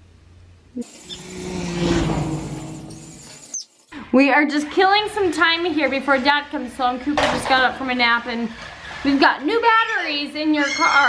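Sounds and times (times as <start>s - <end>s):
toy car electric motor hum: 0.8s - 3.9s.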